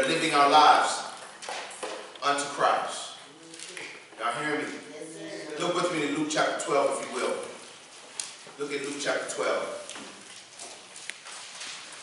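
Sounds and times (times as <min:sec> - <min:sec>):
book pages rustling: 0:09.8 - 0:12.0.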